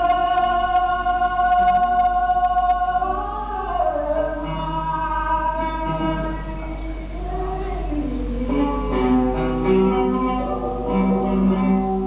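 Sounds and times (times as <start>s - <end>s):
flamenco singing: 0.0s - 12.0s
guitar accompaniment: 0.0s - 12.0s.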